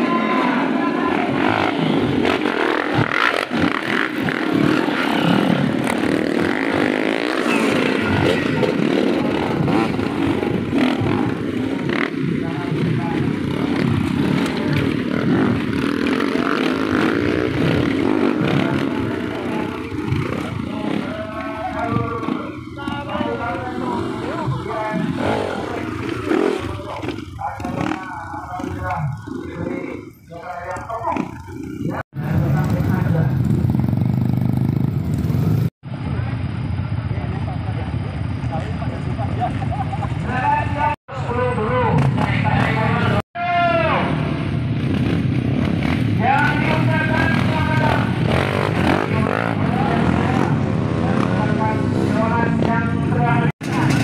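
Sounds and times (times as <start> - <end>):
people's voices: 0.0 - 34.6, 35.9 - 44.6, 46.1 - 54.0
dirt bike engines revving: 0.0 - 54.0.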